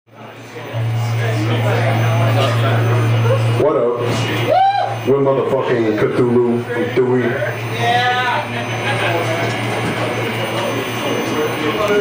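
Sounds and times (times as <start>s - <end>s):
bar crowd noise: 0.1s - 12.0s
stage amplifier hum: 0.1s - 12.0s.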